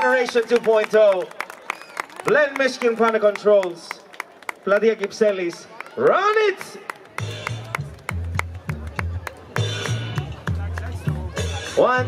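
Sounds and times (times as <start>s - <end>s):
pulsing bass line: 7.2s - 12.0s.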